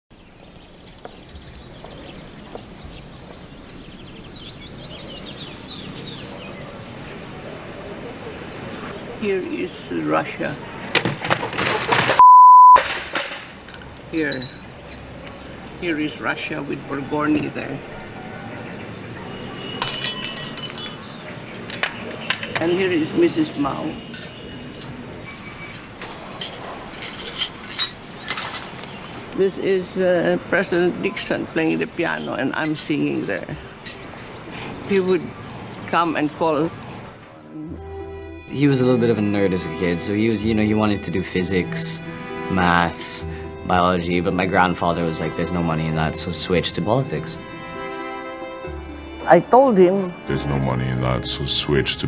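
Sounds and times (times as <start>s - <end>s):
small birds chirping: 0.1s - 10.9s, 13.8s - 26.4s, 28.0s - 37.9s
outdoor background noise: 0.1s - 51.2s
glass shards clinking on tiles: 12.8s - 14.7s, 19.8s - 22.6s, 25.4s - 29.2s.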